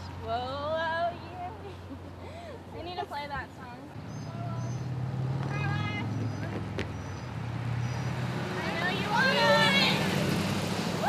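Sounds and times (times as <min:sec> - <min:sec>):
van driving past: 0:03.8 - 0:11.0.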